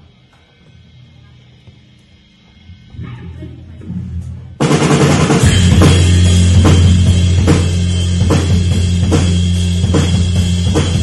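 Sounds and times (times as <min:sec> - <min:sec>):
amplifier drone: 0:00.0 - 0:11.0.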